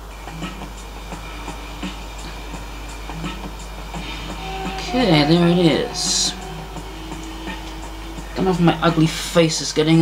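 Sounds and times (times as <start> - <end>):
faint music with steady beat: 0.0 - 10.0.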